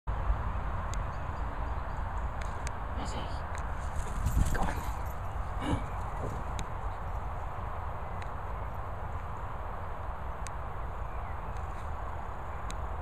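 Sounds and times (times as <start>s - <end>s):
wind rumble on microphone: 0.1s - 13.0s.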